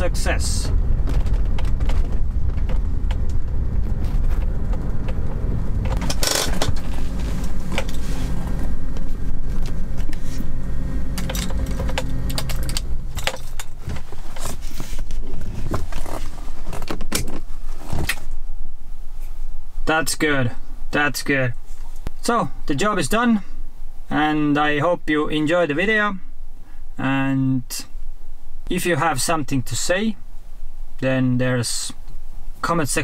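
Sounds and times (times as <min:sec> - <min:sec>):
car engine running at low revs: 0:00.0 - 0:27.0
road rumble: 0:00.0 - 0:33.0
clicks and rattles: 0:11.1 - 0:14.6.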